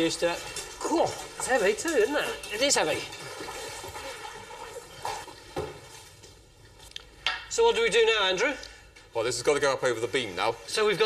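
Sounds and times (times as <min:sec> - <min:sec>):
soft splashes: 0:00.0 - 0:06.4
liquid running and dripping: 0:00.0 - 0:07.2.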